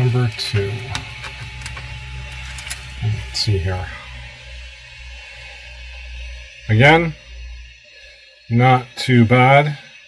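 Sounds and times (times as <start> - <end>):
printer humming: 0.0 - 10.0.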